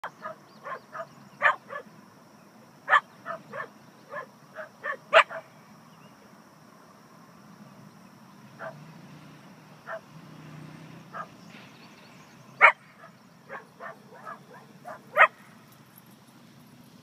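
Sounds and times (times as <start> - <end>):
dogs barking: 0.0 - 1.9, 2.9 - 5.6, 8.6 - 8.8, 9.8 - 10.1, 11.1 - 11.4, 12.6 - 15.5.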